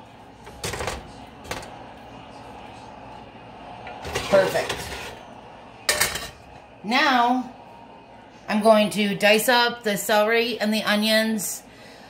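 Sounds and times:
kitchen background noise: 0.0 - 12.0.

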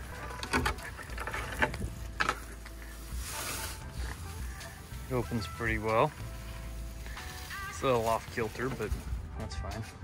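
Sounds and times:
gate scraping rustle: 0.0 - 4.2.

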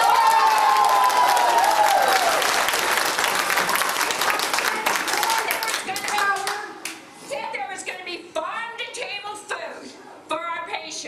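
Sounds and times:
audience applause: 0.0 - 6.6
woman talking: 5.1 - 11.0.

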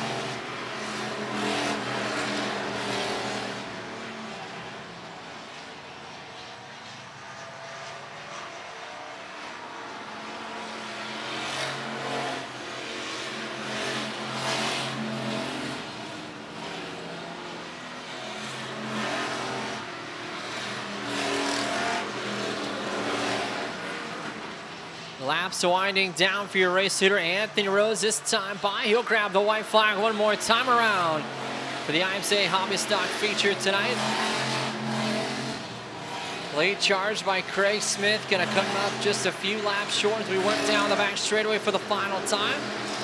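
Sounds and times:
race car engines: 0.0 - 43.0.

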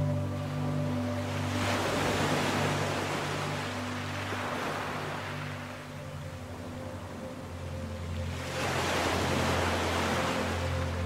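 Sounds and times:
ambient music drone: 0.0 - 11.0
ocean waves: 0.0 - 11.0.

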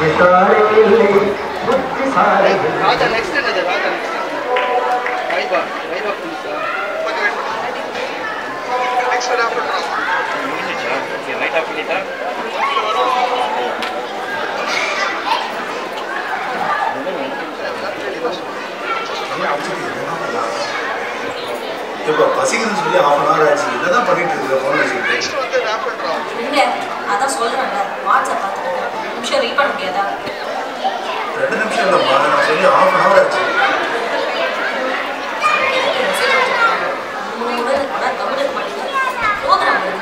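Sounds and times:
people chattering in a hall: 0.0 - 40.0
people talking: 0.0 - 40.0.

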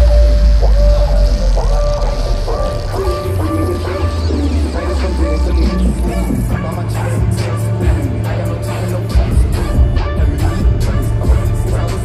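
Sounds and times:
electronic bass music: 0.0 - 12.0.

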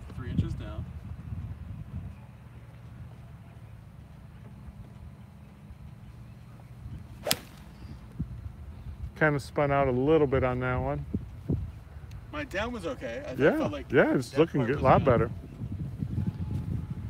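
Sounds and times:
golf club striking ball: 7.2 - 7.9.

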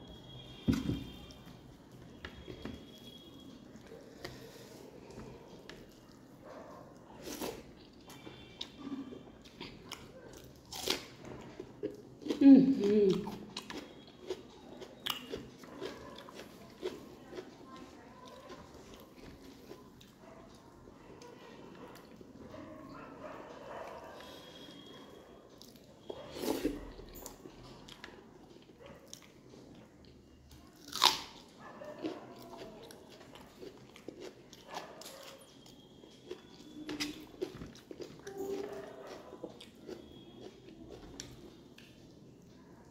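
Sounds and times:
chewing with crunches: 1.0 - 42.9
crunch biting raw onion: 30.8 - 31.4.

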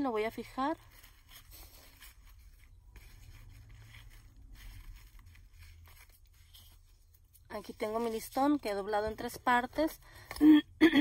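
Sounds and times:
ribbon fabric rustling: 0.0 - 9.9.

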